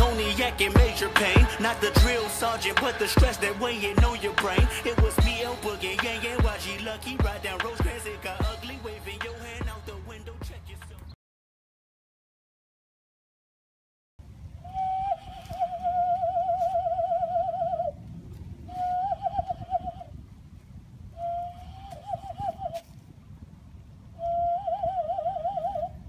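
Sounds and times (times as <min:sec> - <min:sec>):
cupped-hand whistle trilling: 0:14.6 - 0:18.0, 0:18.7 - 0:20.2, 0:21.2 - 0:22.9, 0:24.2 - 0:26.0.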